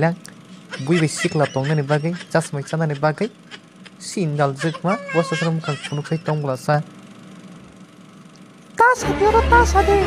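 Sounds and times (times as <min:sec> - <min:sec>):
electronic hum and hiss: 0:00.0 - 0:10.0.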